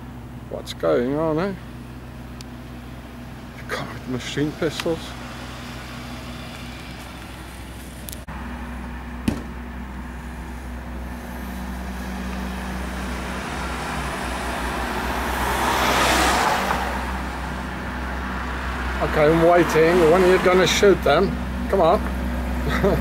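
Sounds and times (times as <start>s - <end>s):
cars passing: 0.0s - 23.0s
steady engine hum: 0.0s - 23.0s
sharp knock: 9.2s - 9.6s.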